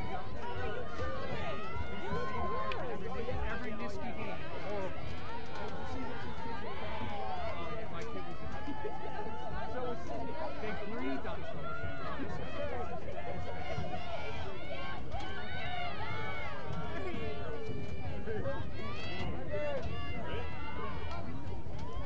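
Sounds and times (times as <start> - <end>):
spectators talking: 0.0 - 22.0.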